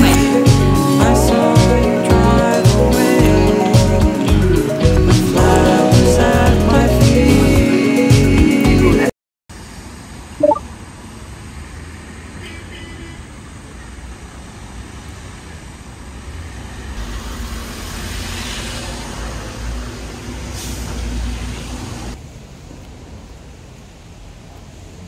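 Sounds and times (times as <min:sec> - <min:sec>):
tyres hissing on wet road: 0:11.1 - 0:22.2.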